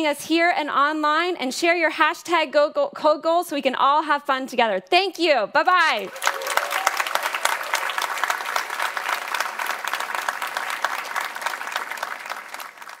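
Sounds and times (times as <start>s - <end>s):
audience applauding: 5.9s - 13.0s.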